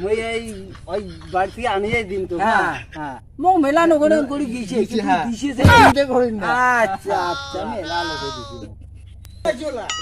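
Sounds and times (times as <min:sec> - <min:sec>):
quavering bleat-like cry: 0:07.1 - 0:08.7.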